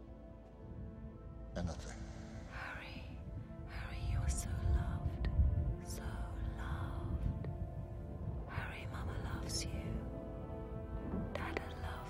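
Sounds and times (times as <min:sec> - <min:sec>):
film score low held notes: 0:00.0 - 0:12.0.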